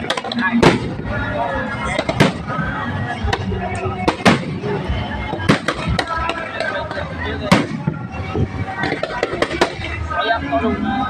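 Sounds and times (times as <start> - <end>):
fireworks bursting: 0.0 - 1.2, 1.8 - 10.1
crowd voices: 0.0 - 11.0.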